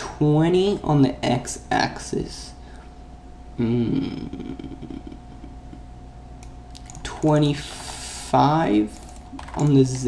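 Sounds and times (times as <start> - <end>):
low hum: 0.0 - 10.0
computer keyboard clicks: 6.4 - 7.4, 8.9 - 10.0.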